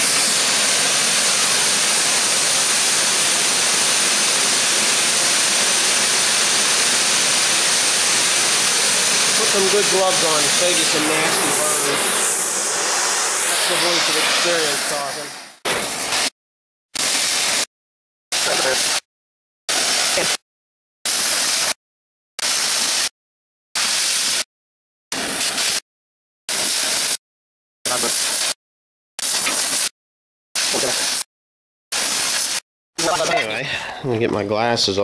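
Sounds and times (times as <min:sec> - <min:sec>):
cutting torch hissing: 0:00.0 - 0:16.3, 0:17.0 - 0:17.7, 0:18.4 - 0:19.0, 0:19.7 - 0:20.4, 0:21.1 - 0:21.8, 0:22.4 - 0:23.1, 0:23.8 - 0:24.4, 0:25.2 - 0:25.8, 0:26.5 - 0:27.2, 0:27.9 - 0:28.6, 0:29.2 - 0:29.9, 0:30.6 - 0:31.3, 0:32.0 - 0:33.6.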